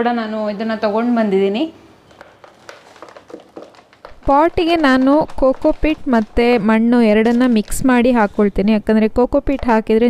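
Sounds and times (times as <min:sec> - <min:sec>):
plastic bag rustling: 0:02.0 - 0:08.5.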